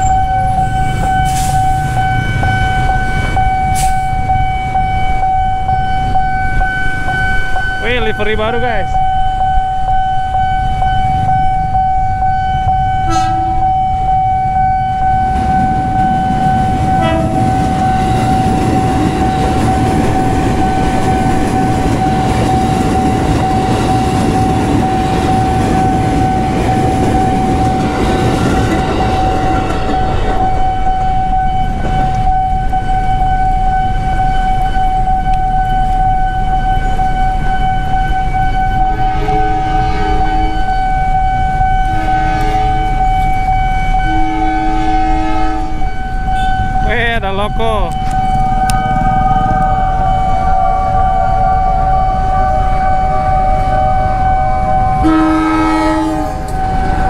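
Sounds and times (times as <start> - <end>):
crossing warning alarm tone: 0.0 - 57.0
train wheels rumbling: 0.0 - 57.0
train horn toot: 13.0 - 13.9, 16.9 - 18.5, 38.4 - 46.8, 50.5 - 57.0.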